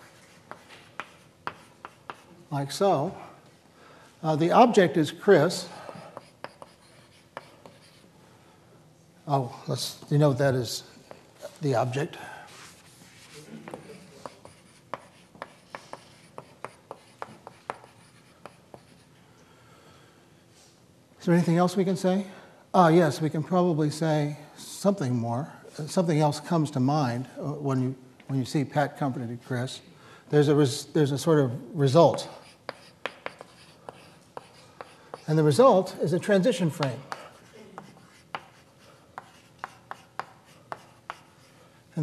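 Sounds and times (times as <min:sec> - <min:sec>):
chalk writing on blackboard: 0:00.0 - 0:02.3, 0:05.9 - 0:08.1, 0:12.6 - 0:19.1, 0:32.1 - 0:35.6, 0:36.8 - 0:41.6.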